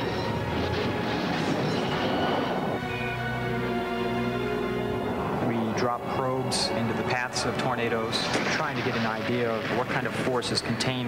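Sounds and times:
music with long held notes: 0.0 - 9.8
storm wind roaring: 0.0 - 11.0.

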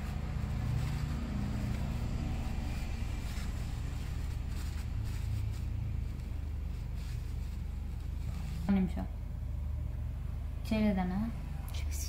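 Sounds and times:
tissue paper rustling: 0.0 - 9.0
low background rumble: 0.0 - 12.0.

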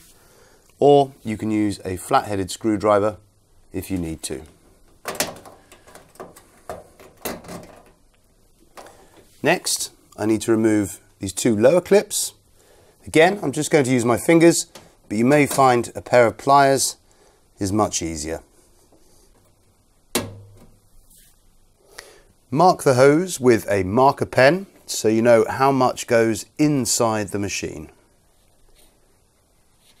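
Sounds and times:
faint handling noise: 3.8 - 11.3, 13.1 - 16.4, 28.2 - 30.0.

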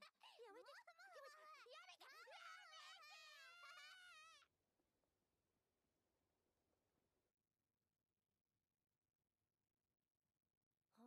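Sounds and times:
child crying out in distress: 2.4 - 4.4.

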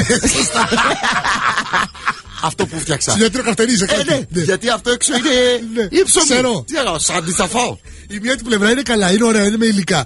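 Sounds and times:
men laughing: 0.0 - 6.4, 7.0 - 7.7.

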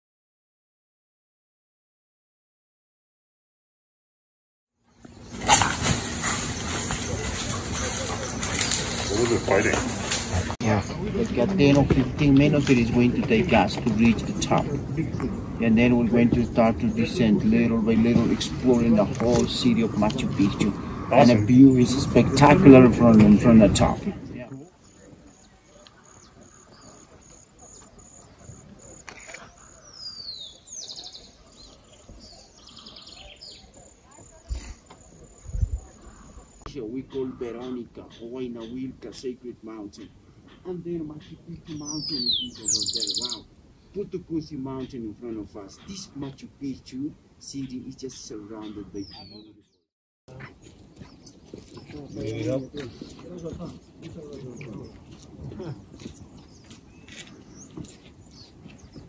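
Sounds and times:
bird chirps: 24.5 - 38.9, 40.0 - 44.0, 47.6 - 49.8, 50.6 - 59.0
bird trill: 24.8 - 34.3, 41.2 - 43.5, 47.6 - 49.8.

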